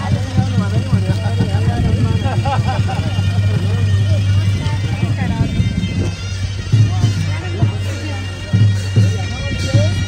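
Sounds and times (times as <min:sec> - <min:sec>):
people talking and greeting: 0:00.0 - 0:10.0
steady low drone: 0:00.0 - 0:10.0.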